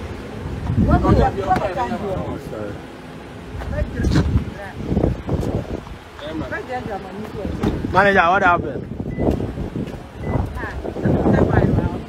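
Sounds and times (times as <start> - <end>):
wind rumbling on microphone: 0.0 - 2.5, 3.4 - 12.0
indistinct voices talking: 0.4 - 12.0.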